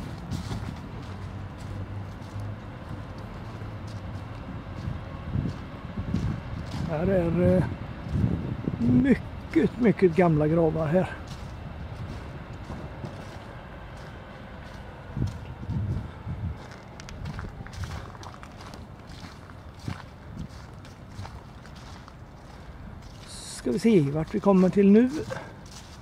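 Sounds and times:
faint outdoor background: 0:00.0 - 0:26.0
footsteps on fallen leaves: 0:00.0 - 0:26.0.

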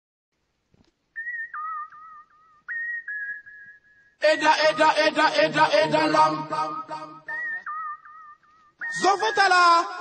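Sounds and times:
high-pitched whistling: 0:01.2 - 0:05.3, 0:06.4 - 0:09.8.

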